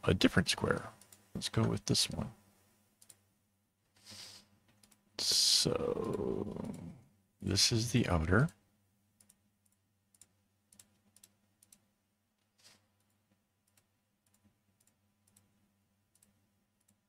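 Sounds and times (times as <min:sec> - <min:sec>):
computer mouse clicks: 0:03.0 - 0:03.2, 0:04.7 - 0:05.0, 0:09.2 - 0:17.0
faint low hum: 0:04.8 - 0:12.4.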